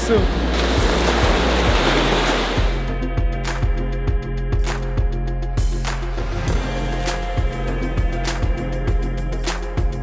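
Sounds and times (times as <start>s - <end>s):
music with low beat: 0.0s - 10.0s
surf breaking on beach: 0.2s - 2.8s.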